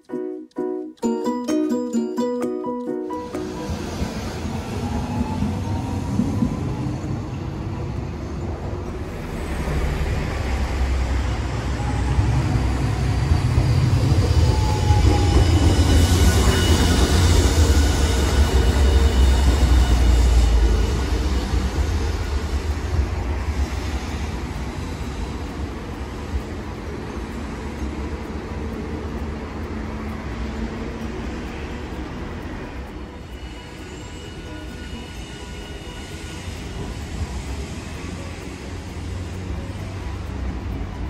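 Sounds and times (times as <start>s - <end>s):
tram wheels rumbling on rails: 0.0s - 41.0s.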